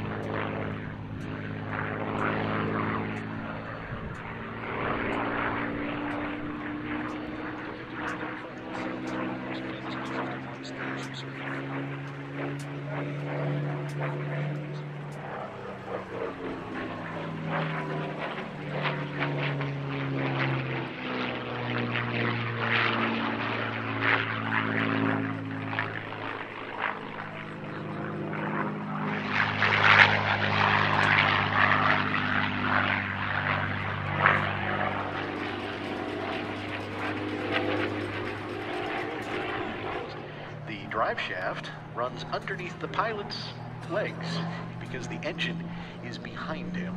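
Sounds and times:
propeller plane engine overhead: 0.0 - 46.9.

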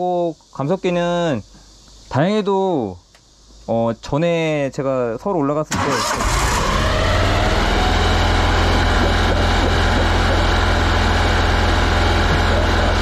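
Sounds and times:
gasoline engine running steadily: 5.8 - 13.0.

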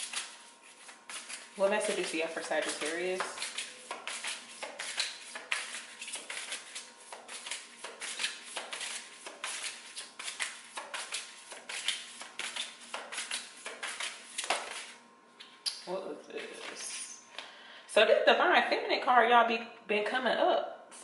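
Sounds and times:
cards being shuffled: 0.0 - 15.0.

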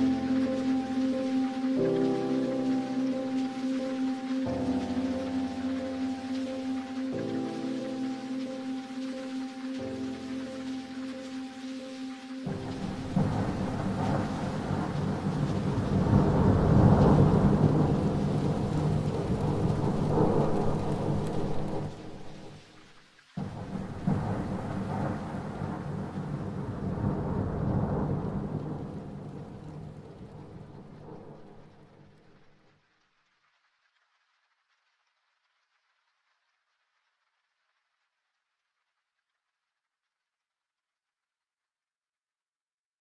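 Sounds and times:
rain falling: 0.0 - 39.3
rolling thunder: 12.5 - 22.8, 23.4 - 32.4.

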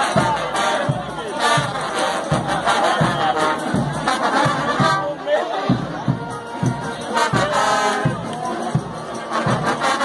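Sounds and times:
crowd shouting and singing: 0.0 - 10.0
street brass band playing: 0.0 - 10.0.

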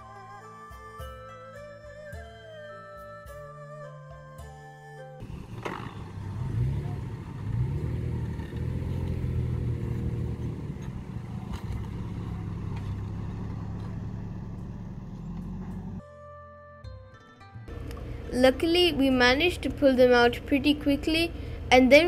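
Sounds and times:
music: 0.0 - 5.9, 16.0 - 22.0
vehicle engines revving: 5.2 - 16.0.

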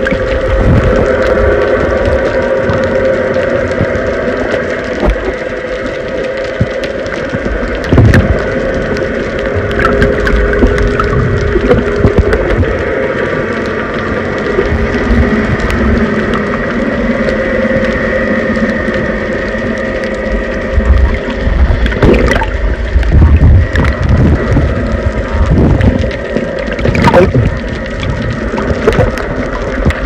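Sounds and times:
faint steady hum: 0.0 - 30.0
underwater rumble and gurgling: 0.0 - 30.0
clicks underwater: 3.7 - 5.5, 6.5 - 8.7, 9.6 - 12.8, 20.8 - 30.0.

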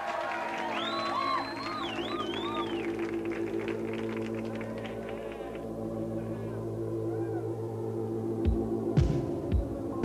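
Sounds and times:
audience applause: 0.0 - 5.6
high gliding whistles: 0.6 - 3.6
sustained low synth chord: 2.3 - 10.0.

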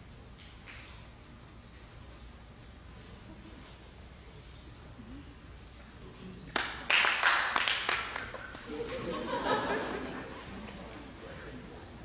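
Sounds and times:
audience handclapping: 6.5 - 8.7.

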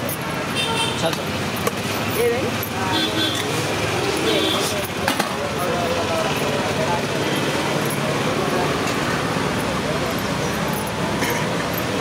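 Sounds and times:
people talking indistinctly: 0.0 - 11.9
road traffic: 0.0 - 12.0.

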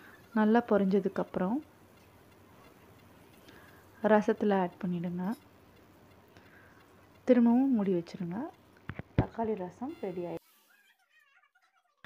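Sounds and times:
woman speaking: 0.4 - 1.6, 4.0 - 5.4, 7.2 - 8.6, 9.2 - 10.4.

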